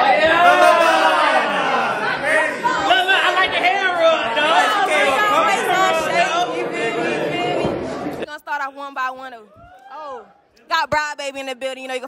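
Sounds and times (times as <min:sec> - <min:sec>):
overlapping voices: 0:00.0 - 0:08.2.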